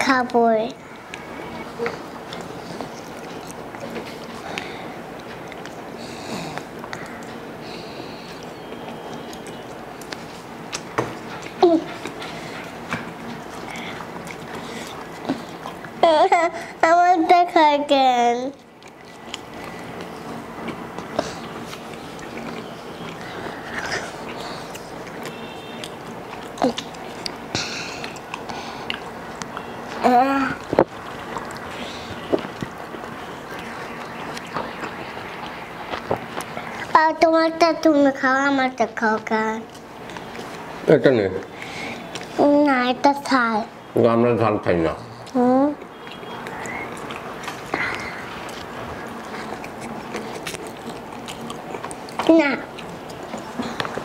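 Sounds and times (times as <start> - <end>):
people biting and chewing: 1.0 - 16.0, 18.6 - 36.9, 39.6 - 40.8, 45.2 - 54.0
wet mouth clicks: 45.2 - 54.0.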